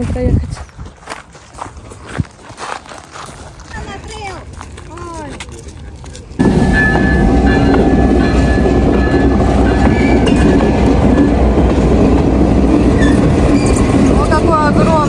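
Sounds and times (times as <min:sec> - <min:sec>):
train rumbling past: 0:06.3 - 0:15.0.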